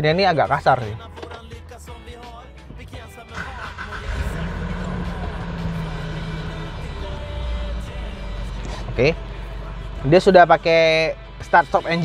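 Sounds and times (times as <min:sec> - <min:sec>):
diesel engine starting and idling: 0:02.8 - 0:12.0.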